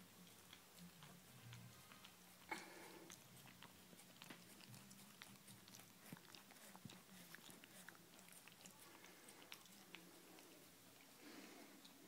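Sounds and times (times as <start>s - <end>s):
dog chewing and licking: 0.0s - 11.1s.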